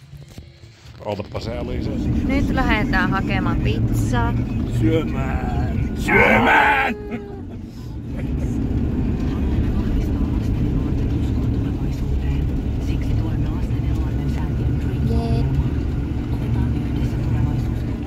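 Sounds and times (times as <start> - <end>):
car engine and road rumble: 0.0 - 18.0.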